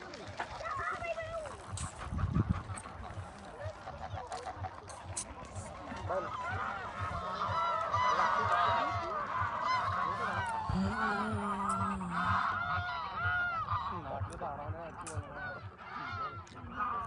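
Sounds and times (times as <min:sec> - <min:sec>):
geese honking: 0:01.6 - 0:17.0.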